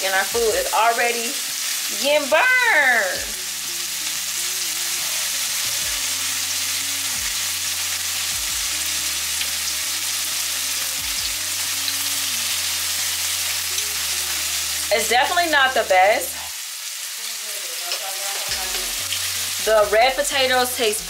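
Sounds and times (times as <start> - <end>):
food sizzling in a pan: 0.0 - 21.0.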